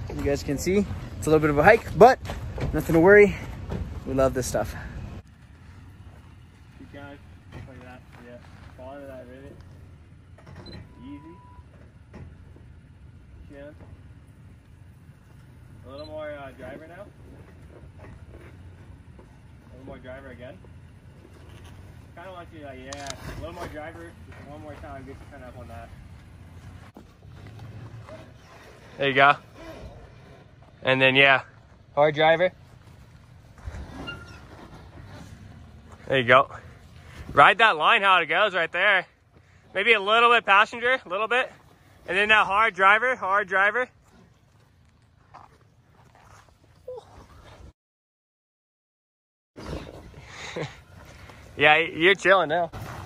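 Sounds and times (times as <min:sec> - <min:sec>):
truck engine low rumble: 0:00.0 - 0:47.7.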